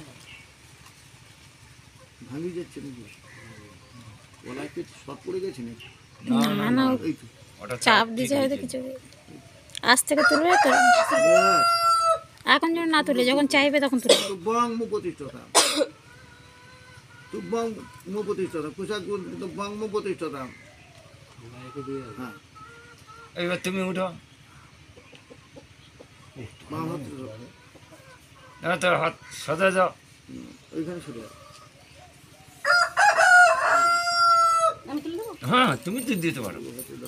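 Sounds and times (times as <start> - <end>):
man talking: 4.5 - 8.6, 35.4 - 37.0
rooster crowing: 9.9 - 12.4, 32.5 - 35.0
man coughing: 14.0 - 14.5, 15.5 - 16.0.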